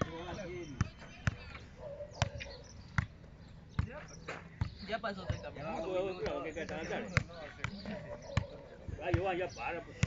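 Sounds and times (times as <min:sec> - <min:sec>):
soccer ball thuds: 0:02.2 - 0:10.0.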